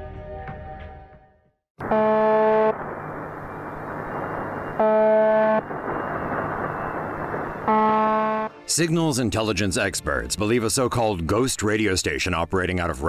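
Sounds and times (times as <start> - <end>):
monotonous buzz tone: 1.8 - 8.5.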